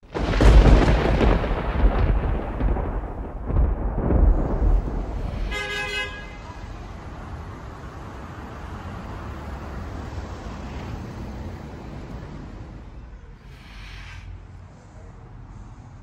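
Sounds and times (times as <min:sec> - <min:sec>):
loud rumbling noise: 0:00.0 - 0:05.8
low hum of street noise: 0:00.0 - 0:16.0.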